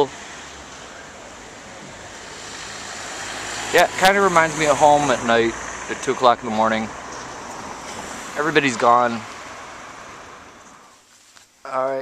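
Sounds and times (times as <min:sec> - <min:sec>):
car passing: 0:00.0 - 0:11.3
traffic noise hiss: 0:00.0 - 0:12.0
man speaking: 0:03.8 - 0:06.9, 0:08.3 - 0:09.3, 0:11.7 - 0:12.0.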